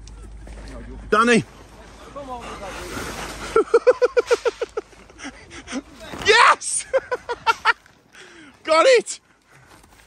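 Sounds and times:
man laughing: 3.4 - 6.0, 6.6 - 7.9.

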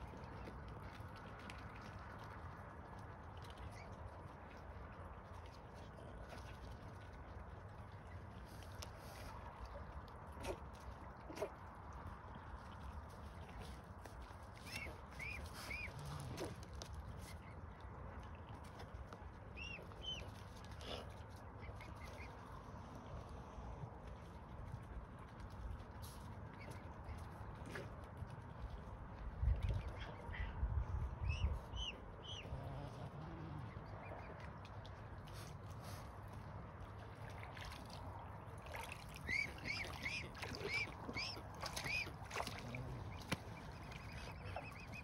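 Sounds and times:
faint outdoor rumble: 0.0 - 45.0
swans preening soft clicks: 0.0 - 45.0.

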